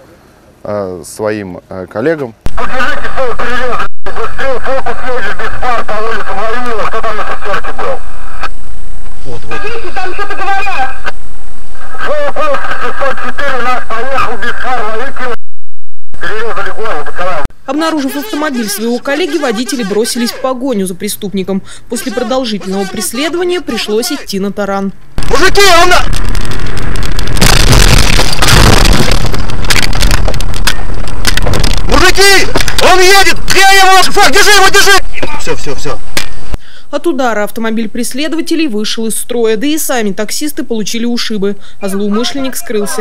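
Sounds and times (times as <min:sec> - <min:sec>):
man's voice over two-way radio: 0:02.5 - 0:08.1, 0:09.3 - 0:11.1, 0:11.8 - 0:15.4, 0:16.2 - 0:20.5, 0:21.9 - 0:24.3, 0:31.9 - 0:36.0, 0:42.1 - 0:43.0
moving car rumble: 0:26.0 - 0:33.5
car crash crunching: 0:26.1 - 0:32.9.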